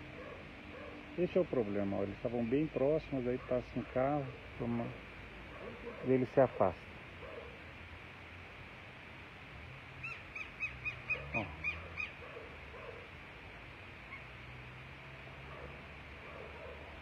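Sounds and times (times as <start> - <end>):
lapwing shrill alarm calls: 10.0 - 12.2.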